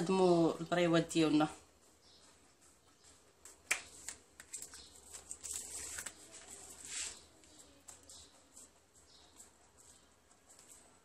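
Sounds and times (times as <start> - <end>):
soft handling of pastry: 3.3 - 11.0.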